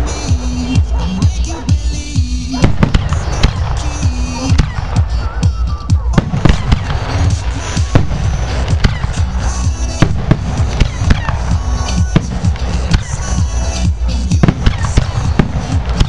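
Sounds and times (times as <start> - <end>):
fireworks bursting: 0.0 - 16.0
music playing: 0.0 - 16.0
low rumble: 2.6 - 16.0.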